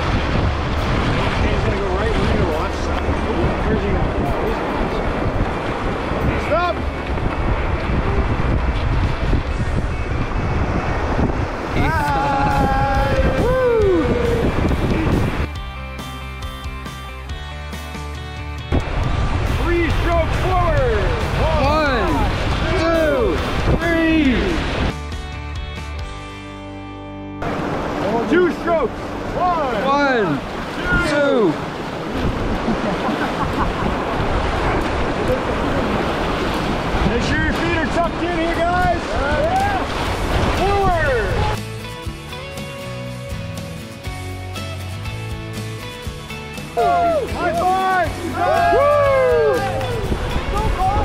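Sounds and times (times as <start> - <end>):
whitewater rapids rushing: 0.0 - 15.5, 18.7 - 24.9, 27.4 - 51.0
wind buffeting microphone: 0.0 - 15.5, 18.7 - 24.9, 28.6 - 41.6, 48.6 - 51.0.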